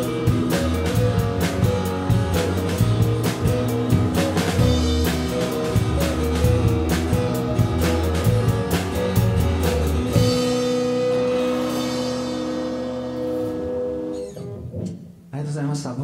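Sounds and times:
rock band playing: 0.0 - 15.2
man speaking: 15.3 - 16.0.

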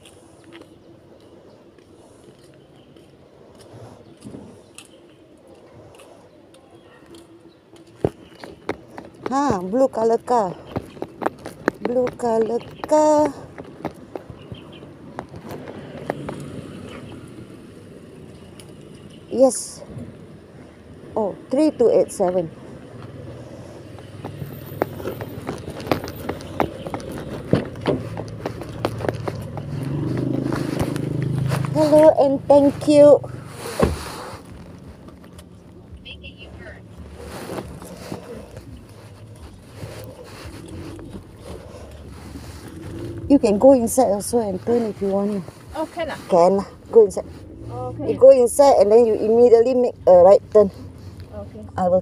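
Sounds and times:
light footsteps on road: 0.0 - 52.0
car passing: 8.8 - 52.0.

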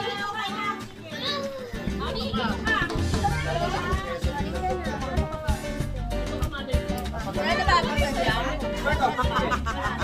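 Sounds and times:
background music: 0.0 - 10.0
voices talking and calling out: 0.0 - 10.0.

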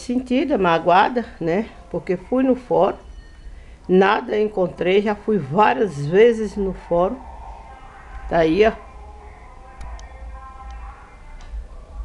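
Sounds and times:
distant bass-heavy music: 4.3 - 12.0.

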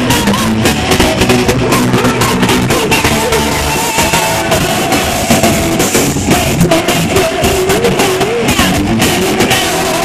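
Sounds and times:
distorted electric guitar: 0.0 - 10.0
drums: 0.0 - 10.0
heavy metal band playing: 0.0 - 10.0.

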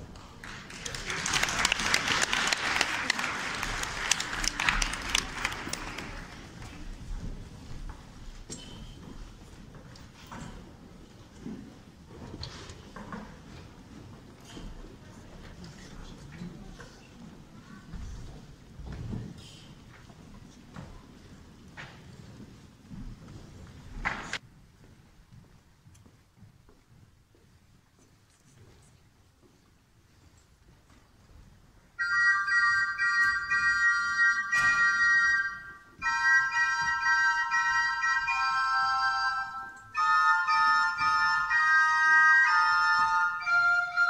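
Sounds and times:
low rumble of hall background noise: 0.0 - 44.0
audience applauding: 0.3 - 6.6.

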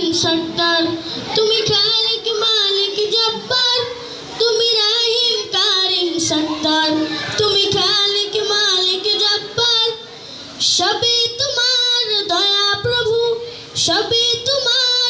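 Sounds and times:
boy singing devotional song: 0.0 - 10.0, 10.6 - 15.0.

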